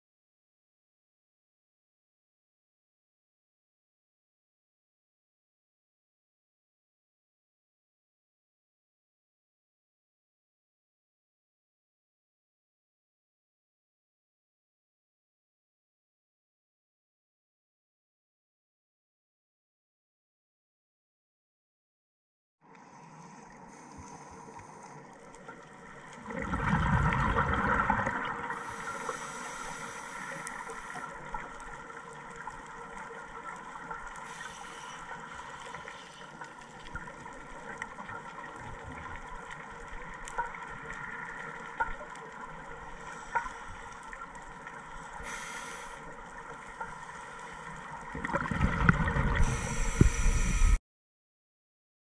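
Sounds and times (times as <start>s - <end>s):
underwater hum: 22.6s - 50.8s
hissing regulator inhalations: 28.5s - 31.1s, 34.2s - 36.3s, 45.2s - 46.1s, 49.4s - 50.8s.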